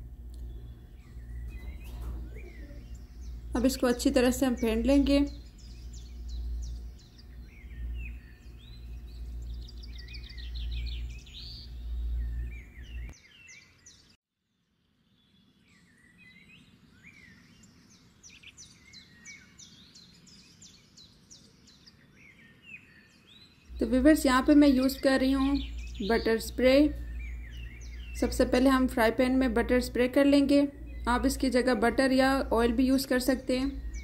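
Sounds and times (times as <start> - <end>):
low hum: 0.0 - 13.2, 23.7 - 34.0
birds chirping: 0.0 - 14.2, 15.0 - 34.0.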